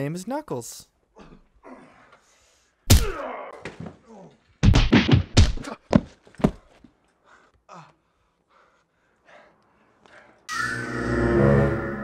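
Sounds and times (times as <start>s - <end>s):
punches landing: 2.9s - 6.8s.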